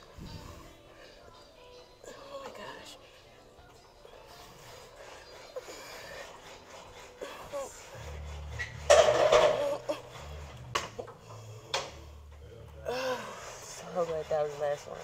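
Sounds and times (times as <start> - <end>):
faint background music: 0.0 - 15.0.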